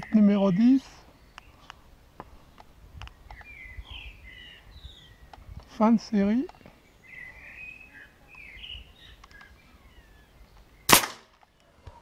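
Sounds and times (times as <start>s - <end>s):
air rifle shot: 10.9s - 11.3s.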